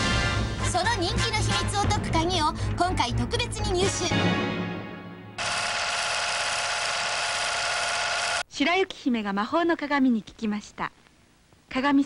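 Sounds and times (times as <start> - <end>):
music: 0.0 - 5.4
loud buzz with fast rattle: 5.4 - 8.4.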